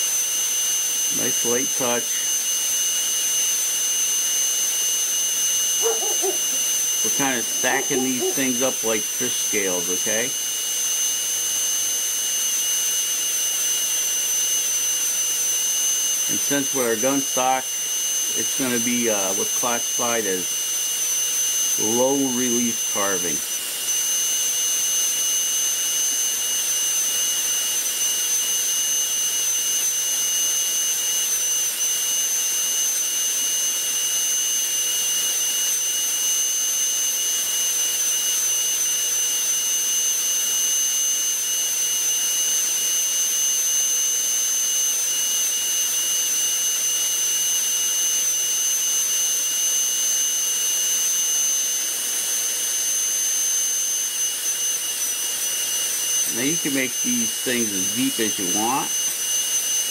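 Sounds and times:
rotary carving tool whining: 0:00.0 - 0:59.9.

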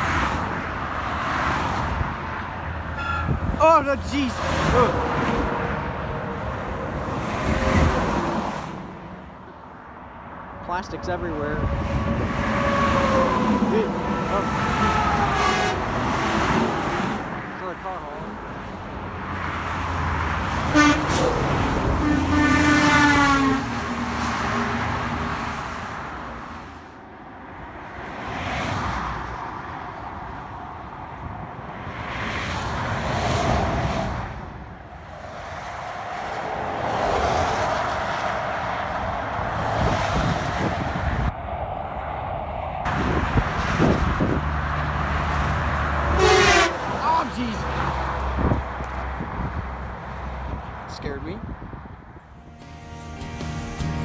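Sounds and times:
trucks passing on highway: 0:00.0 - 0:54.0
truck air horn blasts: 0:03.0 - 0:03.4, 0:20.7 - 0:23.8, 0:46.1 - 0:46.9, 0:52.4 - 0:54.0.

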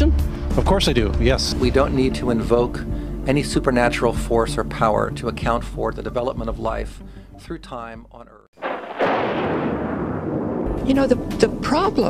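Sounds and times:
cinematic boom with rumbling decay: 0:08.6 - 0:12.0.

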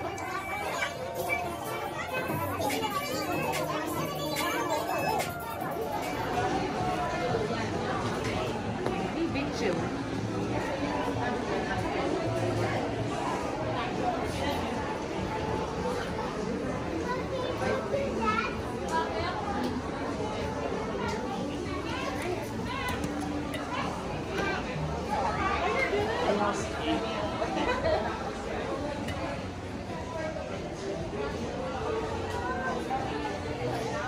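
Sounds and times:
children's voices: 0:00.0 - 0:08.1, 0:12.6 - 0:26.8
indistinct voices talking: 0:00.0 - 0:17.5
store background music: 0:00.0 - 0:17.7.

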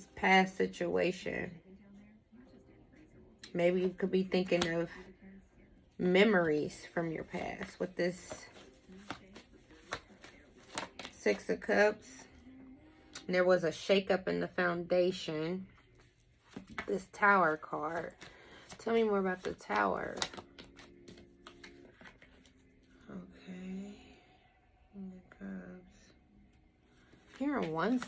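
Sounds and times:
cards being shuffled: 0:06.4 - 0:11.5, 0:15.8 - 0:22.6, 0:27.0 - 0:28.0.

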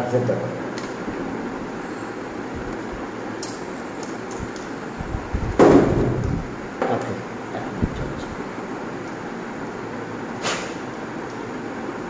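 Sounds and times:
steady background noise: 0:00.0 - 0:12.0
short hiss: 0:10.4 - 0:10.8.

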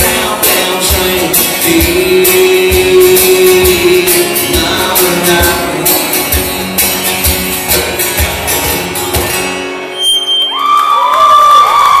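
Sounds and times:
acoustic guitar: 0:00.0 - 0:11.0
audience cheering and whooping: 0:10.2 - 0:12.0.

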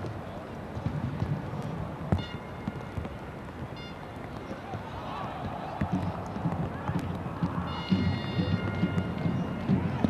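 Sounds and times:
stadium crowd hum: 0:00.0 - 0:10.0.

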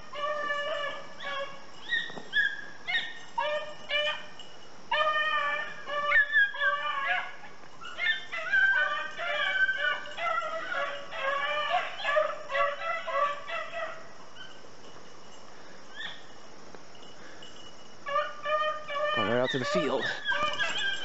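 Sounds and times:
hunting dog baying: 0:00.0 - 0:21.0.

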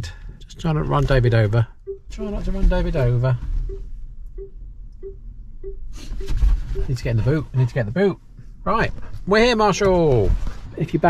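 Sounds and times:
parking sensor beeping: 0:01.7 - 0:02.6, 0:03.6 - 0:07.7.

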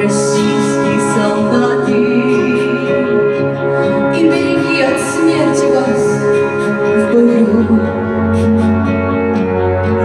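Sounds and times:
woman singing into a microphone: 0:00.0 - 0:08.5
instrumental accompaniment: 0:00.0 - 0:10.0.

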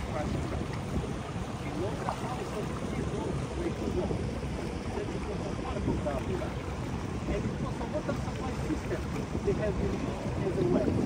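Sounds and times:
boat engine low rumble: 0:00.0 - 0:11.0.

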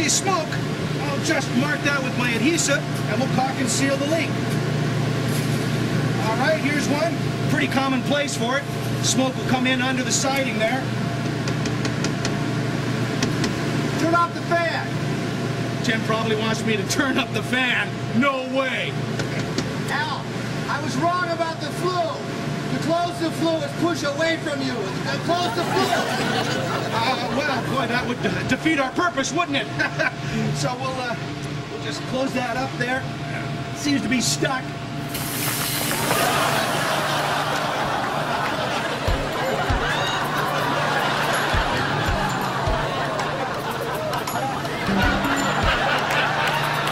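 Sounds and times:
blower door fan humming: 0:00.0 - 0:46.9
air rushing out of fireplace: 0:35.1 - 0:36.8.

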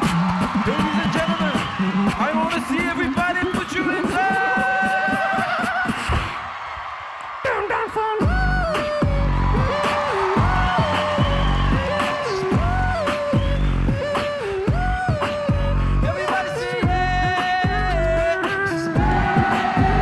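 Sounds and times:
vocal beatbox group: 0:00.0 - 0:06.4, 0:07.8 - 0:20.0
sliding vocal bass line: 0:07.5 - 0:20.0.

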